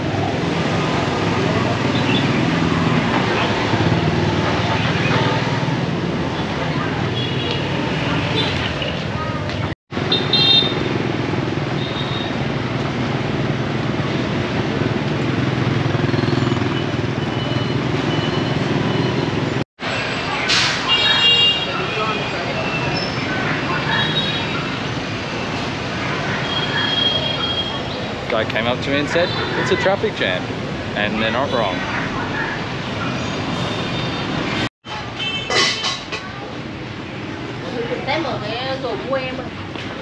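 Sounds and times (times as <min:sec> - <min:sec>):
motorbike and car engines: 0:00.0 - 0:20.9, 0:21.7 - 0:35.2
people's voices: 0:20.2 - 0:33.7.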